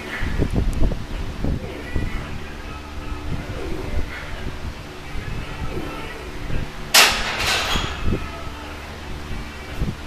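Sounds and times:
barbell clanging on metal hooks: 6.9 - 8.1.

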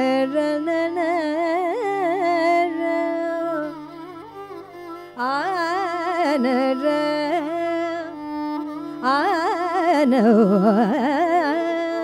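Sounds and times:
woman singing: 0.0 - 4.2, 5.2 - 12.0
tanpura drone: 0.0 - 12.0
violin: 0.0 - 12.0.

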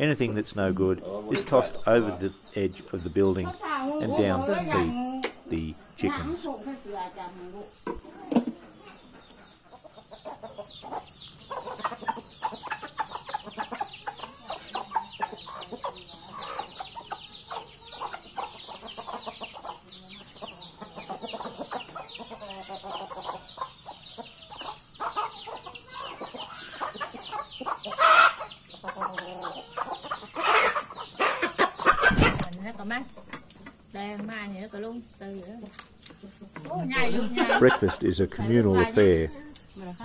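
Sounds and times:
chickens clucking: 0.0 - 40.0
chicks peeping: 0.0 - 40.0.

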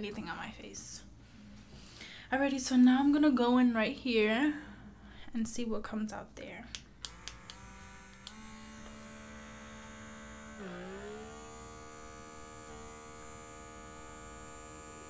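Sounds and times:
pore vacuum motor humming: 7.0 - 15.0.

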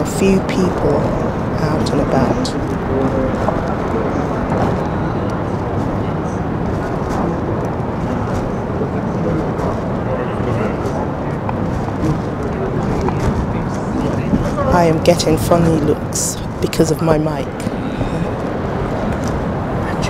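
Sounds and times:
people talking: 0.0 - 18.4
traffic noise: 0.0 - 20.0.

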